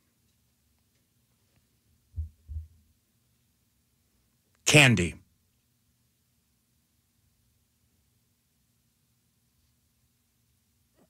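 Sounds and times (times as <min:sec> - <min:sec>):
short low thumps: 0:02.2 - 0:02.8.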